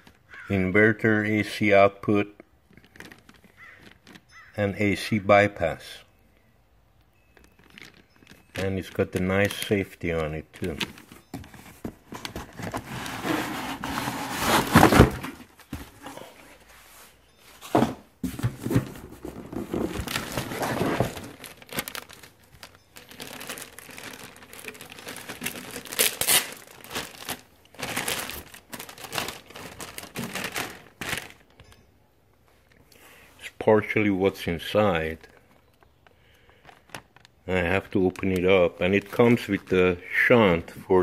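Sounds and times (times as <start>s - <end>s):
plastic bag crinkling: 2.6s - 4.5s, 7.4s - 16.4s, 18.4s - 31.8s, 34.6s - 41.0s.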